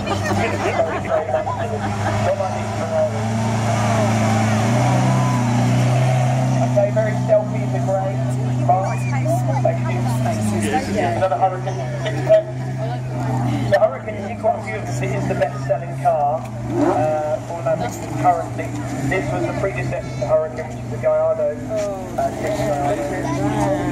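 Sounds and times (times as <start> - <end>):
car engine at low revs: 0.0 - 23.9
spectators chattering: 0.0 - 23.9.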